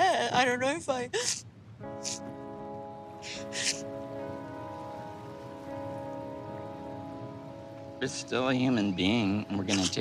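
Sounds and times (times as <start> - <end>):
faint steady hiss: 0.0 - 10.0
soft sustained chord music: 1.6 - 10.0.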